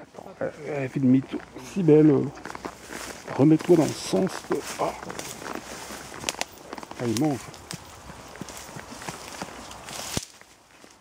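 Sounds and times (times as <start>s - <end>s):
leaves rustling: 0.0s - 11.0s
horse and person steps in undergrowth: 0.3s - 11.0s
twigs crackling and snapping: 1.3s - 11.0s.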